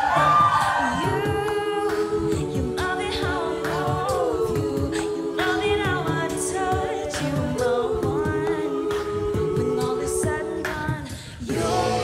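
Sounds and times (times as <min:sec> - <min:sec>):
a cappella group singing: 0:00.0 - 0:12.0
beatboxing: 0:00.0 - 0:12.0.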